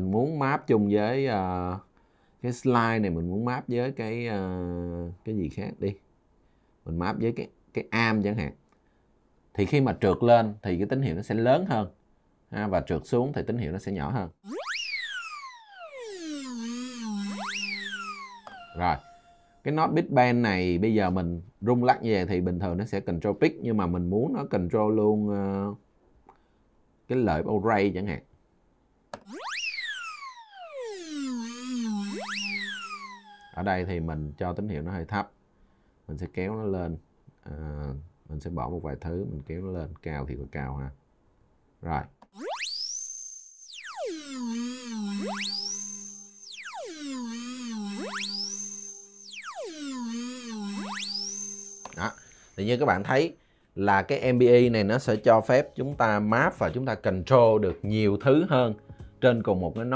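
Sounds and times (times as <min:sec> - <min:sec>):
synth note sweeping in pitch: 0:14.4 - 0:19.9, 0:29.2 - 0:34.4, 0:42.4 - 0:53.1
low steady synth tone: 0:14.4 - 0:20.0, 0:29.2 - 0:34.5, 0:42.4 - 0:53.1
click: 0:51.8 - 0:52.3.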